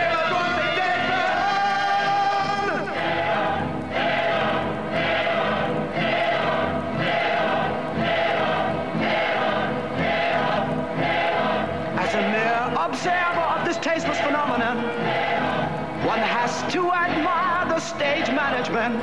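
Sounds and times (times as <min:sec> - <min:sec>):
chorus chanting in unison: 0:00.0 - 0:19.0
musical accompaniment: 0:00.0 - 0:19.0.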